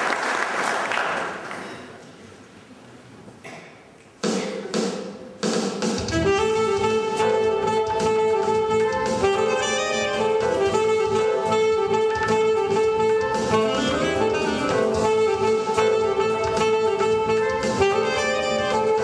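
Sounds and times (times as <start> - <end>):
alto saxophone playing jazz: 6.0 - 19.0
backing track with bass: 6.0 - 19.0.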